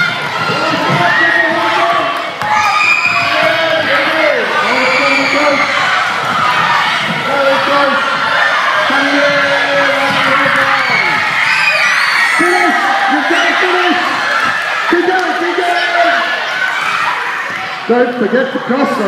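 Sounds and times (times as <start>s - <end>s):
children shouting and cheering: 0.0s - 19.0s.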